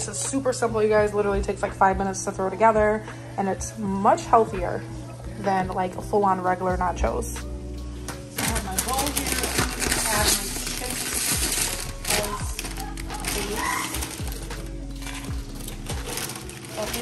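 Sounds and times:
background music: 0.0 - 17.0
plastic bag crinkling: 8.3 - 17.0.

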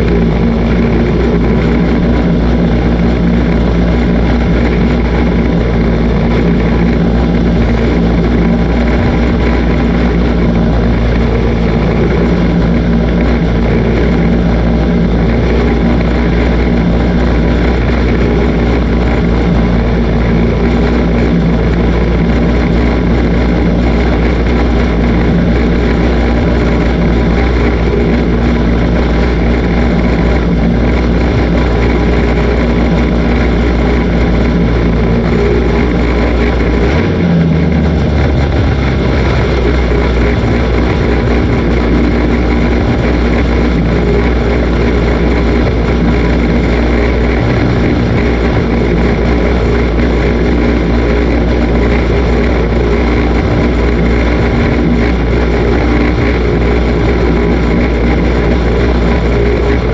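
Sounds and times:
race car engine idling: 0.0 - 59.9.

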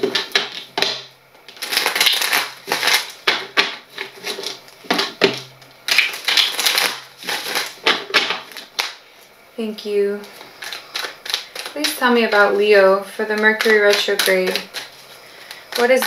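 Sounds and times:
cards being shuffled: 0.0 - 9.0, 10.2 - 12.5, 13.3 - 16.0.

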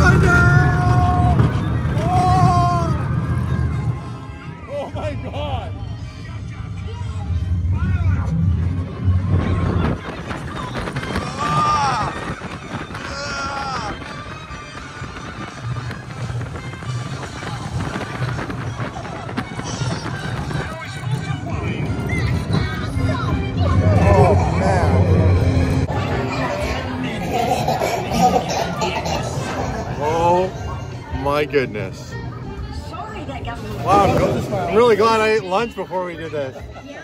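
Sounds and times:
riders yelling and whooping: 0.0 - 3.2, 10.9 - 14.1
roller coaster rumbling on track: 0.0 - 37.0.

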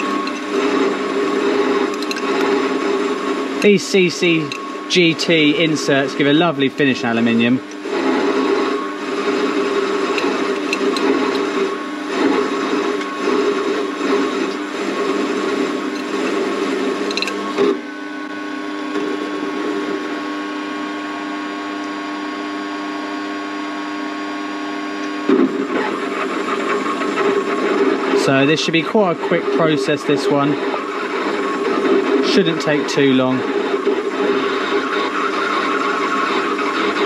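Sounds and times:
lathe cutting aluminium: 0.0 - 17.8, 25.4 - 37.0
lathe motor and gear whine: 0.0 - 37.0.

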